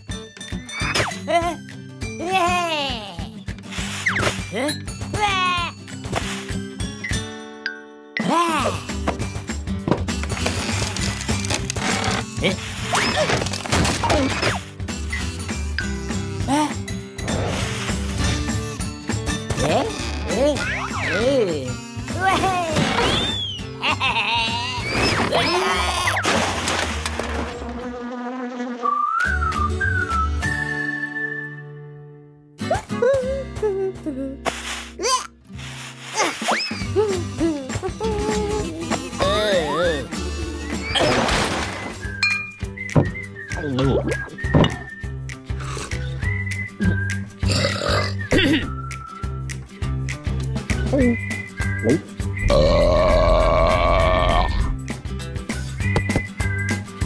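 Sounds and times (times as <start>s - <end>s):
background music: 0.0s - 27.2s, 29.3s - 57.0s
whistled melody: 23.0s - 23.8s, 28.8s - 33.4s, 36.3s - 41.1s, 41.9s - 53.0s, 54.8s - 57.0s
cartoon insect buzz: 27.5s - 29.1s
long loud cartoon burp: 47.4s - 48.6s, 52.5s - 54.6s.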